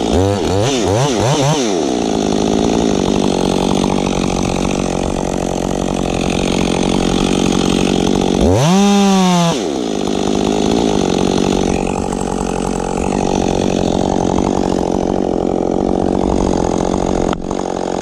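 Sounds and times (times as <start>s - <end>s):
chainsaw cutting wood: 0.0s - 18.0s.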